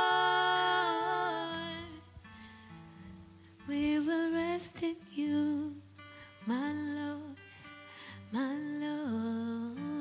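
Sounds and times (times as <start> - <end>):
woman singing long notes: 0.0 - 2.1
soft acoustic guitar: 0.0 - 10.0.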